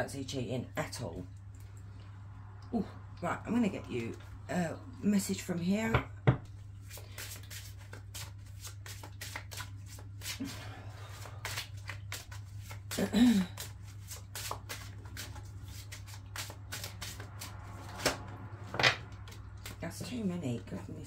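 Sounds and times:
cards being shuffled: 6.8 - 19.8
cards snapping: 7.1 - 10.4, 13.6 - 18.2.

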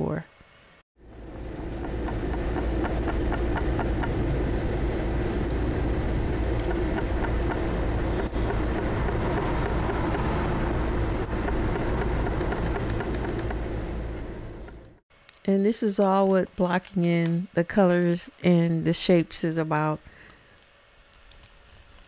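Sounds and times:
low rumble: 1.0 - 15.0
high bird chirps: 5.4 - 5.7, 7.6 - 8.6.

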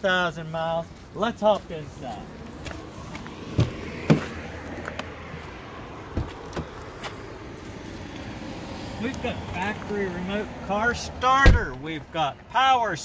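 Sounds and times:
knocks and bumps in car: 3.5 - 4.3, 6.1 - 6.7, 11.4 - 11.8.

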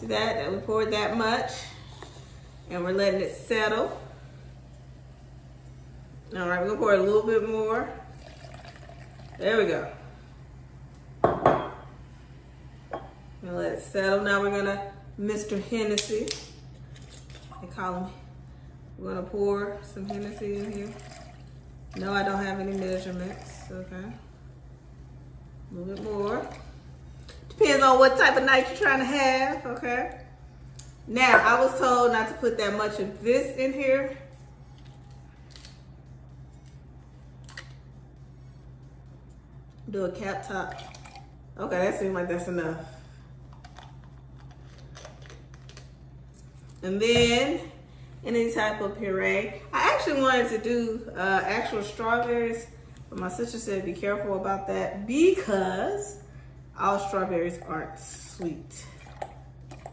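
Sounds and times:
low hum: 0.0 - 59.9
glass bottle clunking on countertop: 11.2 - 11.8.

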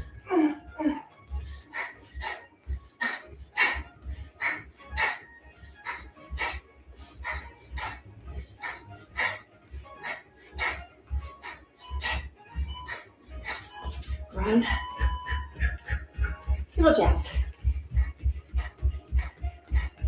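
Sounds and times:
workout music with steady beat: 0.0 - 20.0.

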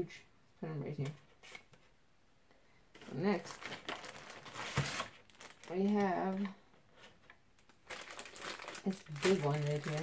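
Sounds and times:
plastic wrapper crinkling: 3.1 - 10.0.

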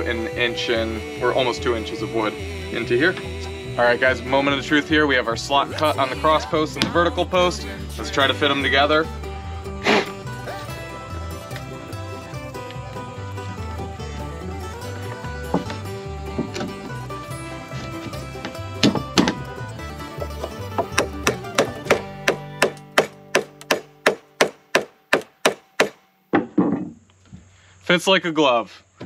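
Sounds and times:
background music: 0.0 - 26.2
sharp knocks on wood: 18.4 - 19.4, 20.4 - 27.0.

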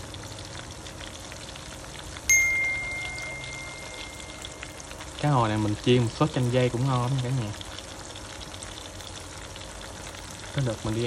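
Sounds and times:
fish deep-frying in hot oil: 0.0 - 11.0.

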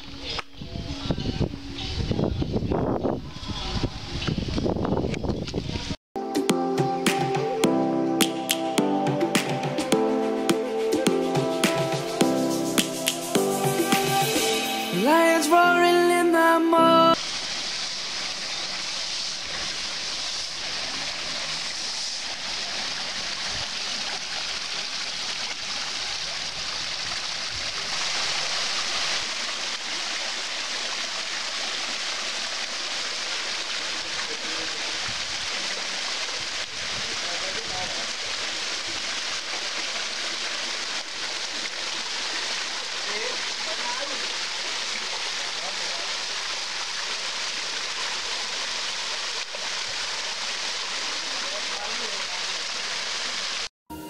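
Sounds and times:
waterfall splashing into pools: 17.1 - 53.7.

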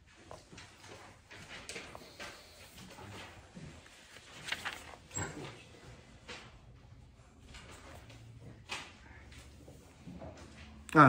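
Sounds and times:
book rustling: 0.1 - 6.6.

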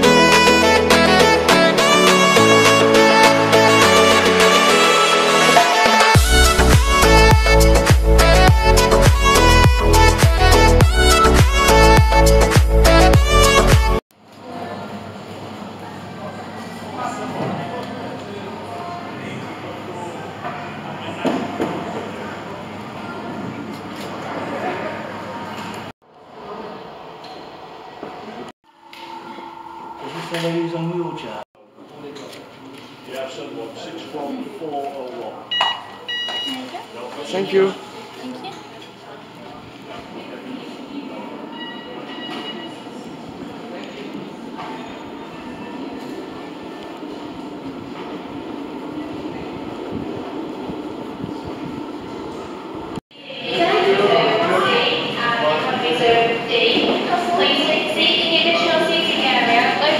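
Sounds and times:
indistinct voices: 33.6 - 59.9.

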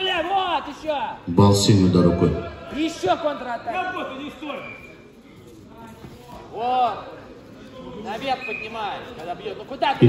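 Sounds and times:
sports hall murmur: 0.0 - 10.0.

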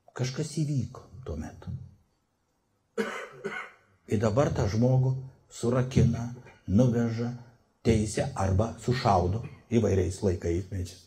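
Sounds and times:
speech: 0.1 - 1.9, 4.1 - 11.0
short cough: 3.0 - 3.9.

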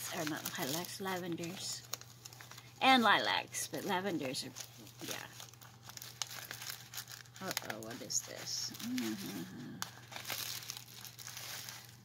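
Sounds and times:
paper and plastic wrapping crinkling: 0.0 - 12.0
small crackles: 0.0 - 12.0.

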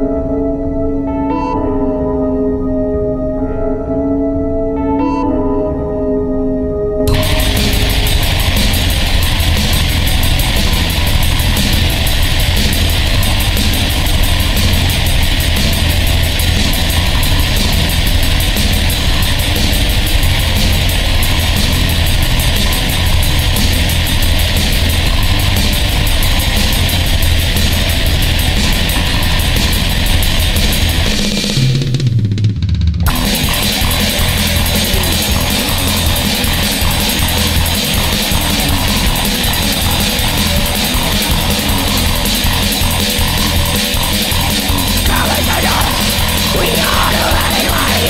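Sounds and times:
quiet ambient music: 0.0 - 8.4
metal band playing: 7.1 - 32.1, 33.1 - 48.0.

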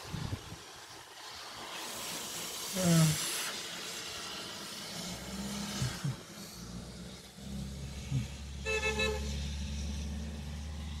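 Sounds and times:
car passing on wet road: 0.0 - 11.0
car horn short toots: 8.6 - 9.3.

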